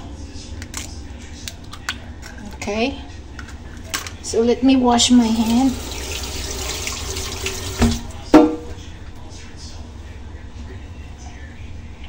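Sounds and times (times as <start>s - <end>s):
tap running into sink: 5.4s - 8.6s.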